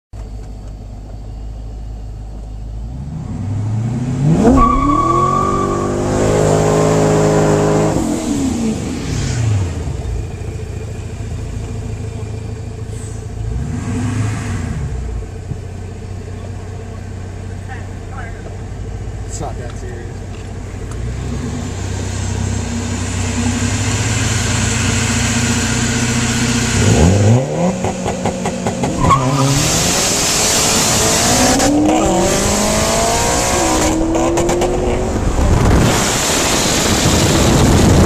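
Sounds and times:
car engine revving: 2.8 - 15.6, 16.3 - 38.0
tyre squeal: 4.4 - 6.6, 28.9 - 29.6.

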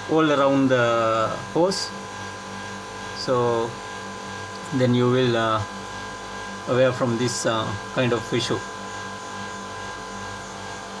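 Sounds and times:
machinery humming: 0.0 - 11.0.

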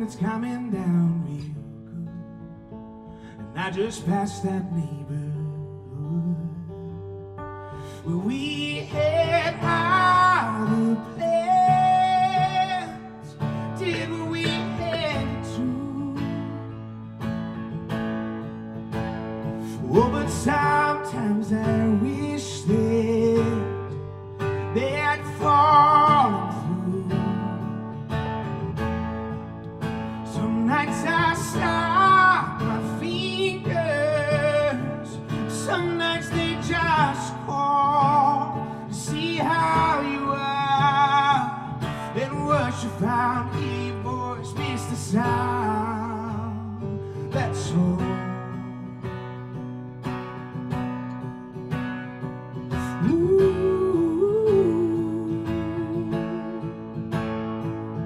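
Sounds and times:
man singing: 0.0 - 2.4, 3.4 - 7.0, 7.9 - 17.0, 19.6 - 27.9, 30.1 - 49.0, 52.7 - 56.8
acoustic guitar: 0.0 - 58.0.

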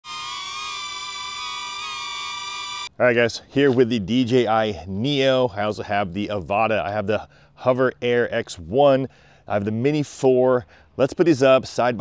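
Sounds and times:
drone propellers whining: 0.0 - 2.9.

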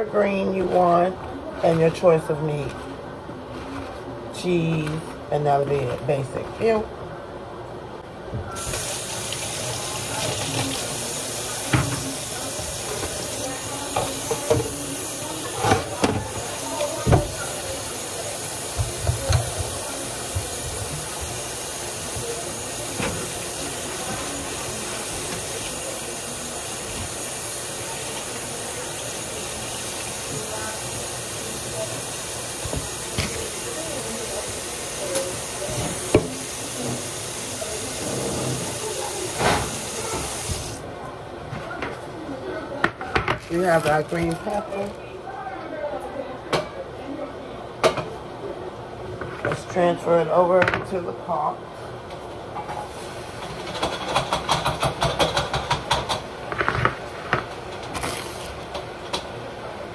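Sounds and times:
tap running into sink: 8.6 - 17.7, 18.7 - 21.4, 32.5 - 33.6, 35.0 - 37.2.

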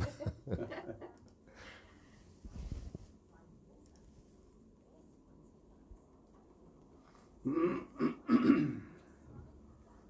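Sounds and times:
laughter: 0.0 - 1.2
person clearing throat: 7.4 - 9.0.

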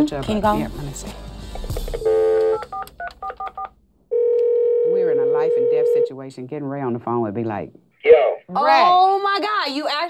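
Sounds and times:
telephone tone: 2.0 - 6.0
telephone ringback tone: 4.1 - 6.1.

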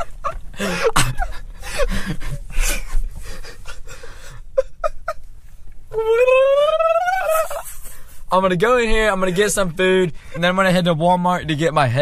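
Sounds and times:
man laughing wheezily: 0.0 - 5.3, 6.0 - 8.2
short voiced yelps: 5.9 - 7.6.

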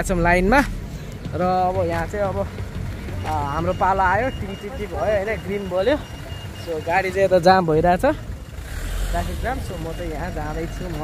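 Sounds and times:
car engines rumbling: 0.0 - 11.0
people talking: 1.3 - 8.3, 9.1 - 11.0.

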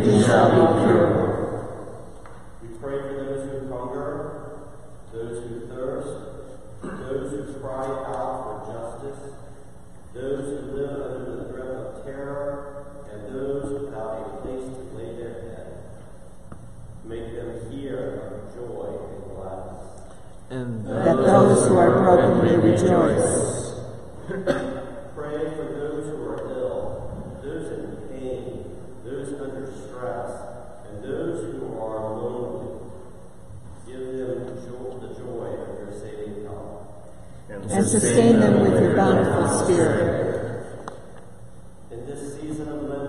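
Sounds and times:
congregation reciting in unison: 0.0 - 2.0, 20.7 - 23.8, 37.5 - 40.8.

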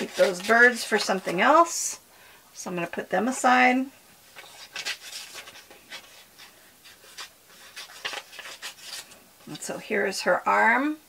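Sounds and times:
paper sheets rustling: 0.0 - 1.7, 4.3 - 9.7.

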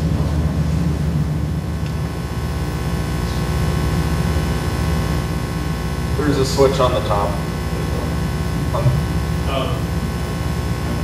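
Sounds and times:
faint electrical buzz: 0.0 - 11.0
low hall background hum: 0.0 - 11.0.

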